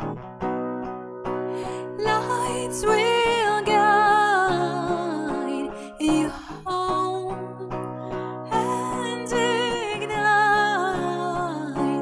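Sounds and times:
strummed acoustic guitar: 0:00.0 - 0:12.0
woman singing a slow ballad: 0:01.6 - 0:12.0.

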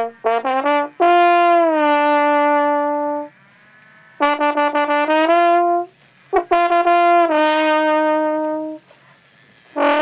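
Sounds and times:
trombone playing: 0:00.0 - 0:09.0, 0:09.7 - 0:10.0.

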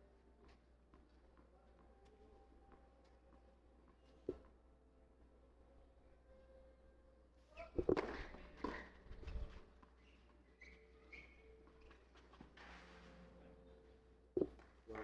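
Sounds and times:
footsteps on clay court: 0:00.4 - 0:04.5.

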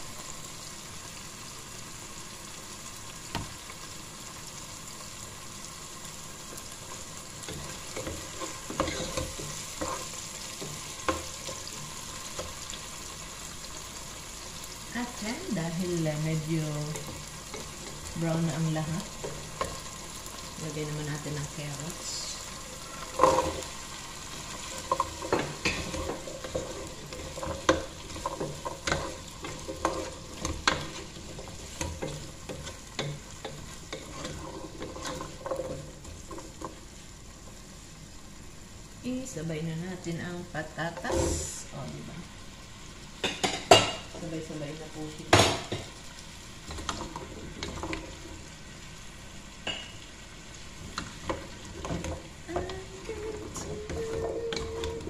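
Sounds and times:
meat and onions sizzling: 0:00.0 - 0:55.0.

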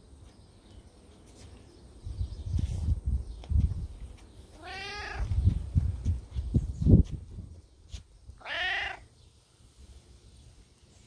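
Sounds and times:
cat meowing: 0:04.6 - 0:05.3, 0:08.4 - 0:09.1.

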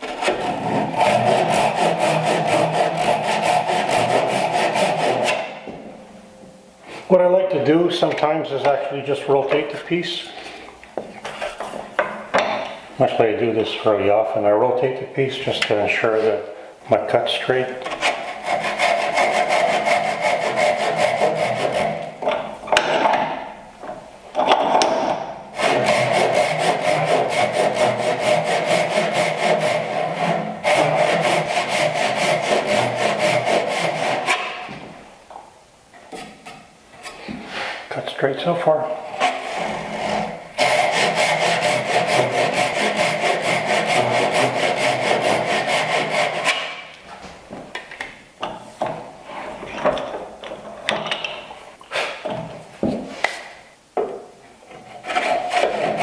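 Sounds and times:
hand saw cutting wood: 0:00.0 - 0:05.7, 0:17.8 - 0:23.0, 0:24.8 - 0:34.8, 0:38.9 - 0:46.9, 0:54.7 - 0:56.0.

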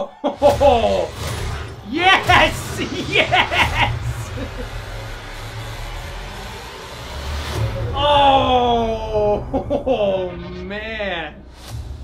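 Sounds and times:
deep rumble: 0:00.4 - 0:12.0
hiss-like swell: 0:01.1 - 0:08.9.

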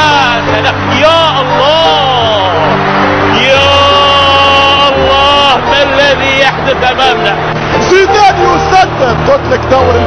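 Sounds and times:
crowd roar: 0:00.0 - 0:10.0
man exclaiming excitedly: 0:03.3 - 0:07.3.

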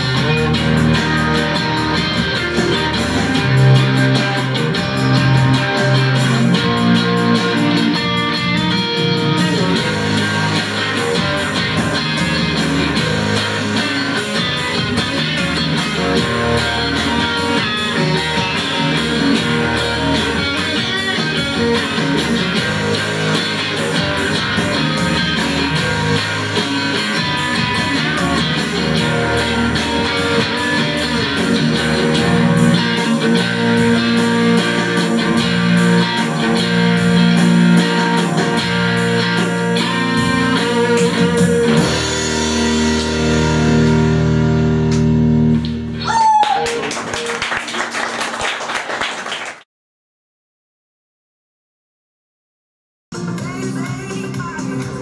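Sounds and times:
steady beat: 0:00.0 - 0:44.0, 0:53.1 - 0:55.0
overdriven electric guitar: 0:00.0 - 0:49.4.

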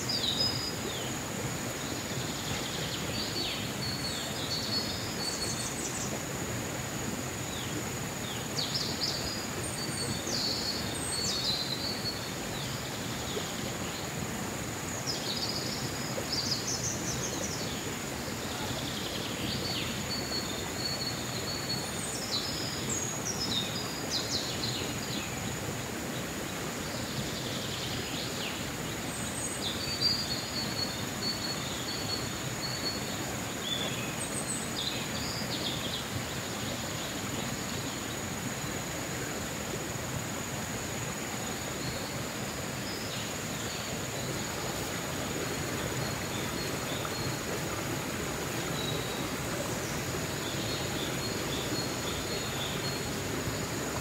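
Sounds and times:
stream rushing: 0:00.0 - 0:54.0.

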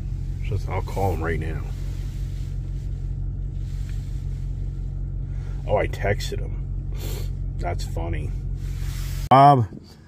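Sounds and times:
engine idling: 0:00.0 - 0:09.3.

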